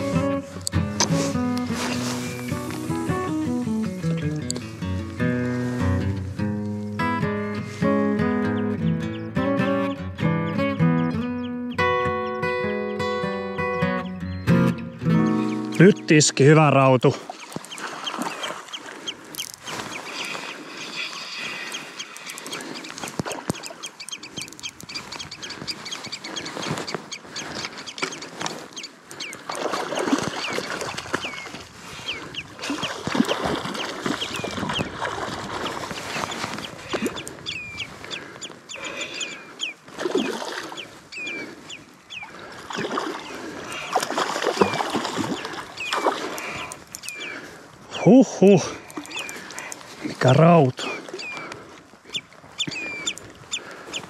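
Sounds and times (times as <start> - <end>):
rustling noise: 1.0 - 7.9, 19.3 - 28.8, 33.5 - 38.6.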